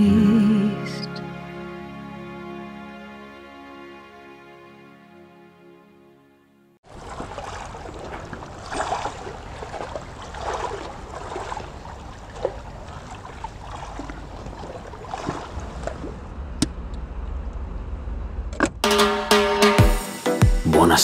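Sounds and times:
music with drum beat: 18.8 - 20.7.

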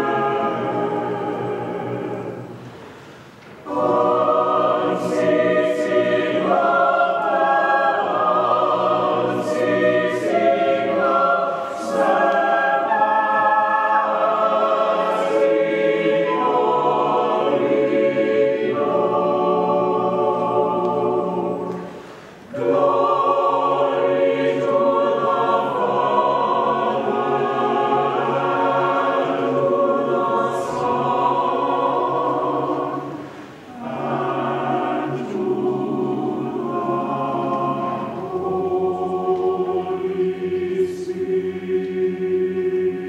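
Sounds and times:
church choir singing: 0.0 - 43.0.

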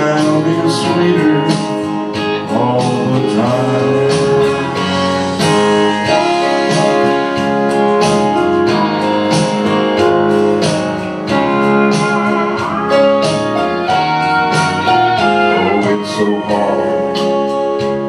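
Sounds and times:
guitar-led country backing music: 0.0 - 18.0.

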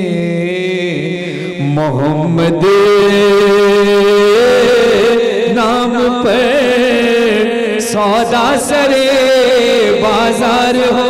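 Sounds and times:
man singing ornamented notes: 0.0 - 11.0.

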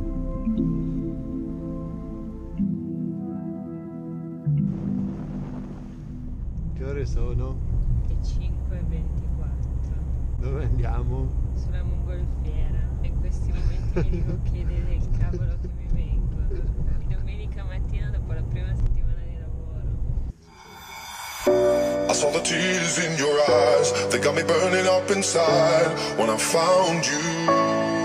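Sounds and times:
car cabin rumble: 4.7 - 20.3
people chatting: 6.8 - 20.0.

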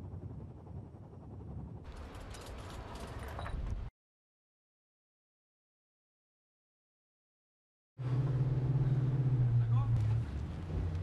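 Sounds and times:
ship engines droning: 8.0 - 11.0.

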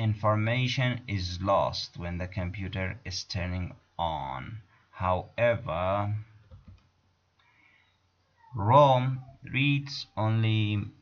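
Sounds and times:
man lecturing: 0.0 - 6.4, 8.6 - 11.0.

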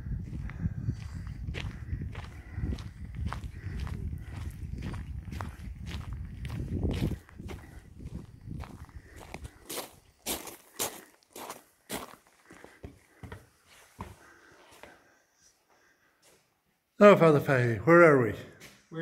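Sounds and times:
footsteps crunching on gravel: 0.3 - 13.4.

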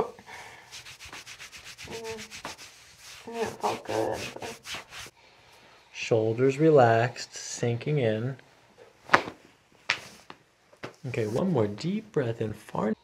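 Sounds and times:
hands rubbing on shirt: 0.6 - 5.1, 9.8 - 11.5
person murmuring: 1.8 - 2.3, 3.2 - 4.7.

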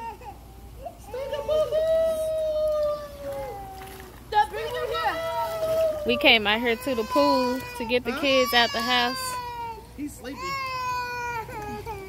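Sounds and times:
baby crying: 6.0 - 12.0.

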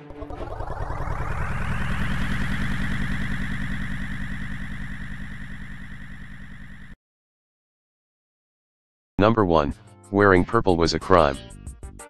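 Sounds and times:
synthesized pulsing rumble with buzz: 0.0 - 7.0.

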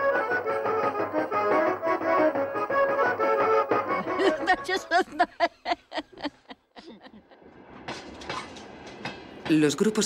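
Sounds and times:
train running on rails: 7.5 - 10.0
wheels clacking over rail joints: 7.5 - 10.0.

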